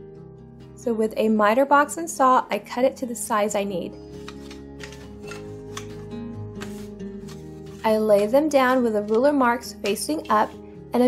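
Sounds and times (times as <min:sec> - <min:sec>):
soft background music: 0:00.0 - 0:11.0
wooden sticks clacking: 0:04.2 - 0:06.0, 0:06.6 - 0:10.5.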